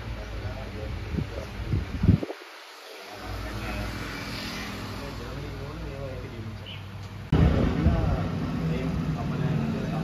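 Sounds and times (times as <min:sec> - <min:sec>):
low hum and rumble: 0:07.3 - 0:10.0.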